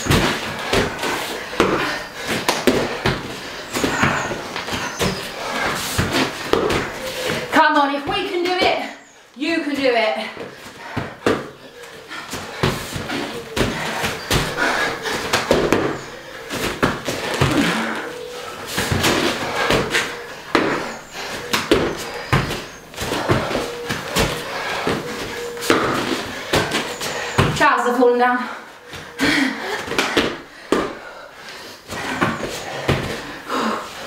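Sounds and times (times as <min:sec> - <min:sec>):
feet landing on rubber mat: 0:00.0 - 0:07.5, 0:09.5 - 0:11.6, 0:12.2 - 0:27.7, 0:29.8 - 0:31.1, 0:31.9 - 0:33.4
hands slapping floor: 0:00.0 - 0:07.5, 0:10.6 - 0:27.6, 0:29.7 - 0:31.1
people breathing and grunting: 0:00.0 - 0:34.0.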